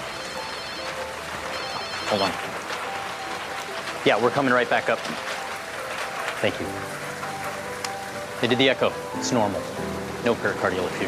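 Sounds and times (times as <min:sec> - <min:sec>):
warbling phone ringtone: 0:00.0 - 0:04.0
soft background music: 0:00.0 - 0:11.0.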